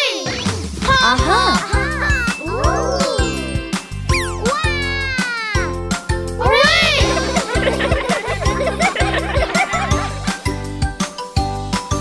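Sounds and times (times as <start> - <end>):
bouncy children's music: 0.0 - 12.0
cartoonish voice-like whoops: 1.0 - 3.6, 4.2 - 5.8, 6.4 - 7.3.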